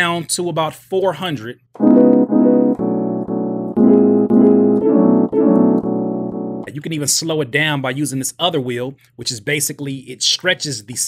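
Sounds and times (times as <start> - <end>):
chopped piano loop: 1.8 - 6.9.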